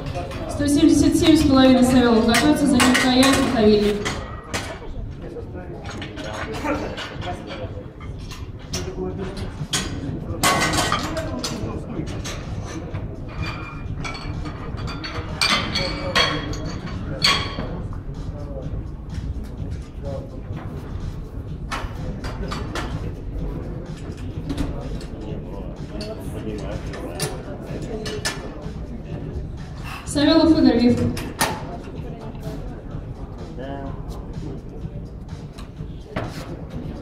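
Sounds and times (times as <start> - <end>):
background voices in a hall: 0.0 - 37.0.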